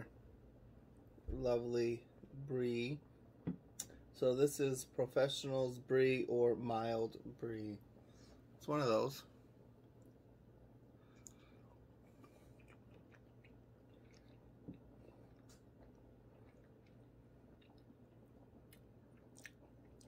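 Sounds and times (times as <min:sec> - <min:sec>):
mouth clicks of chewing: 0:18.6 - 0:20.0.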